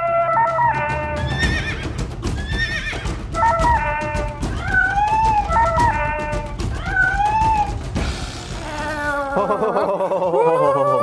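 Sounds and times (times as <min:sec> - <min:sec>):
warbling high cries: 0:00.0 - 0:08.0
theme music with steady beat: 0:00.0 - 0:10.3.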